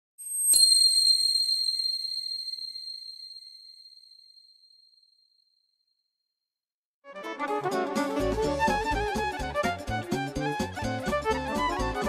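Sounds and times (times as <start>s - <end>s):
high-pitched chime: 0.2s - 4.6s.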